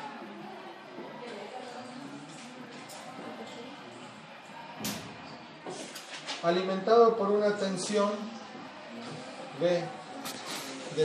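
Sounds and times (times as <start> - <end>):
steady room noise: 0.0 - 11.0.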